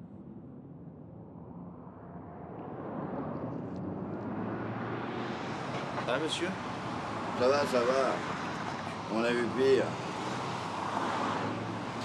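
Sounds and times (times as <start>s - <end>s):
low vehicle rumble: 0.0s - 7.4s.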